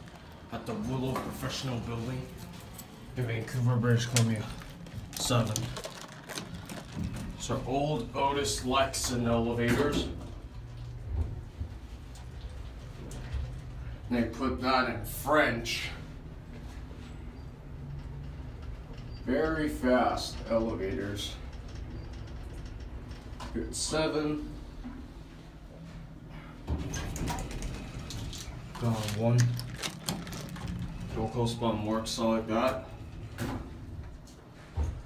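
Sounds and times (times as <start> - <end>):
elevator car low rumble: 15.8 - 34.2.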